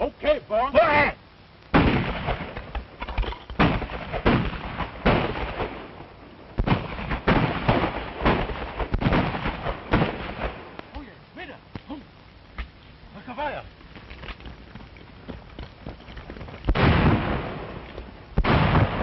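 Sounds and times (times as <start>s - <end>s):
gunshots with echo: 16.7s - 17.7s, 18.4s - 19.0s.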